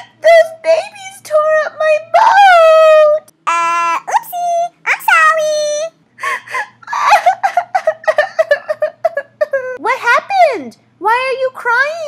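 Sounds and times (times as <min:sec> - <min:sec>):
high voice sobbing: 0:06.2 - 0:09.8.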